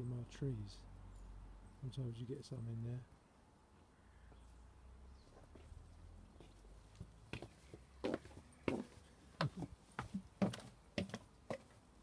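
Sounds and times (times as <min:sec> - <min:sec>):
footsteps on paving and decking: 0:05.2 - 0:12.0.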